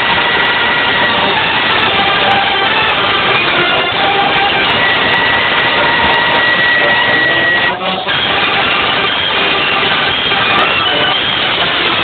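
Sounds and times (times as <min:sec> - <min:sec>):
wind band playing: 0:00.0 - 0:12.0.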